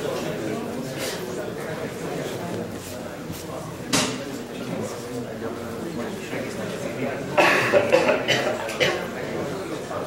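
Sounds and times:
people talking indistinctly: 0.0s - 10.0s
loud cough: 7.4s - 9.1s.

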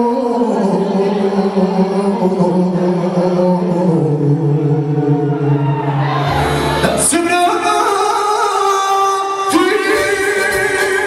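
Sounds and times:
man singing with vibrato: 0.0s - 5.5s, 6.2s - 11.0s
electronic keyboard accompaniment: 6.2s - 11.0s.

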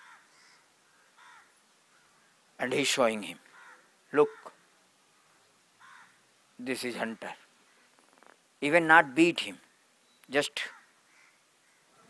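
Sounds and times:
crow cawing faintly: 0.0s - 2.4s, 3.4s - 6.3s, 10.6s - 12.0s.

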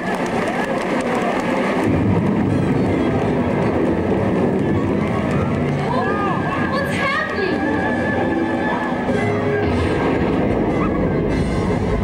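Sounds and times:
tornado rushing and rumbling: 0.2s - 8.3s.

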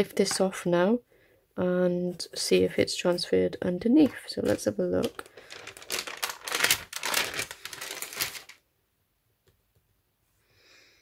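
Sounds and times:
paper crinkling and rustling: 4.0s - 8.6s.

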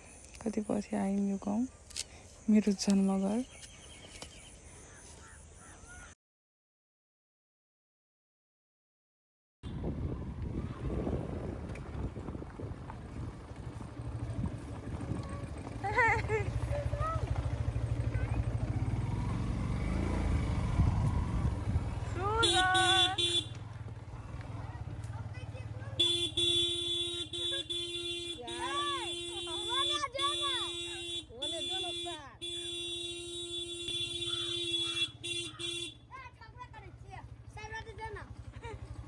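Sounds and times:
motorcycle engine running: 9.7s - 39.0s
horn tooting: 22.2s - 23.7s, 25.9s - 36.2s
children's voices: 24.3s - 26.0s, 28.5s - 31.0s.

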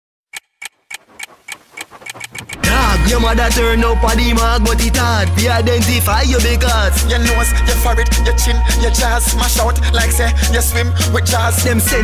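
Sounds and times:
sharp clock-like ticks: 0.3s - 2.9s.

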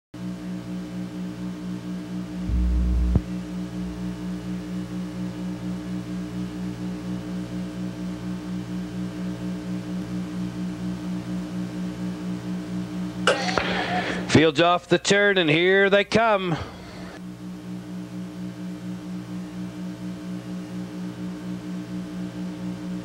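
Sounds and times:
pulsing low buzzing hum: 2.2s - 5.4s
low rumble: 2.4s - 4.3s.

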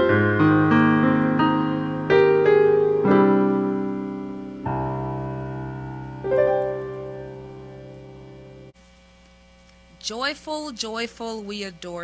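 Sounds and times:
electrical mains hum: 0.0s - 12.0s
woman speaking: 9.9s - 12.0s.

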